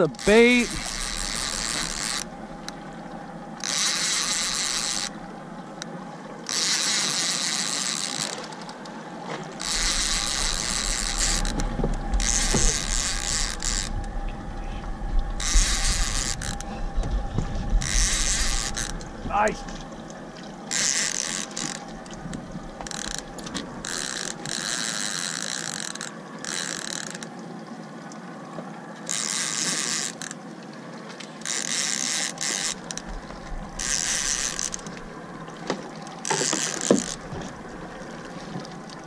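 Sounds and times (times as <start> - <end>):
fishing reel ratchet whirring: 0.1 - 2.8, 3.6 - 5.2, 5.8 - 8.7, 9.6 - 14.2, 15.4 - 16.8, 17.8 - 19.5, 20.7 - 21.9, 22.8 - 27.3, 29.1 - 30.4, 31.4 - 35.1, 36.2 - 37.3.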